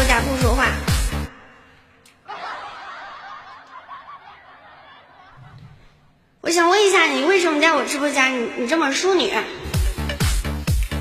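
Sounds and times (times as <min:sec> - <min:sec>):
quiet laughter: 0:02.1 - 0:06.2.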